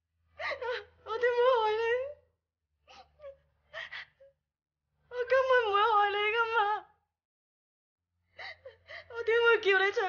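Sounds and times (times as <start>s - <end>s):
woman sobbing: 0.4s - 1.6s.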